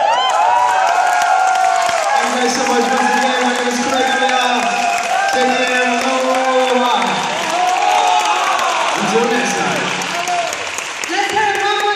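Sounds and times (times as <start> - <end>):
audience applauding: 0.0 - 11.9
cheering voices: 0.0 - 11.9.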